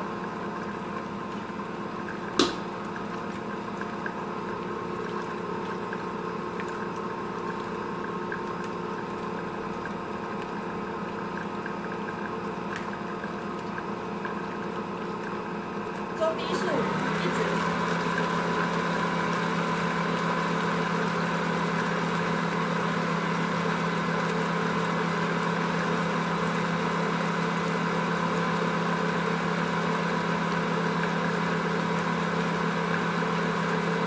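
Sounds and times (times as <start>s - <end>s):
stand mixer whisking: 0.0s - 34.0s.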